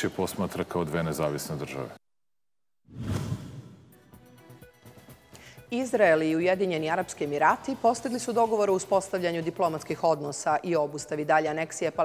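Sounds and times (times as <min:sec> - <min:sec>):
whoosh sound effect: 0:02.9 - 0:03.9.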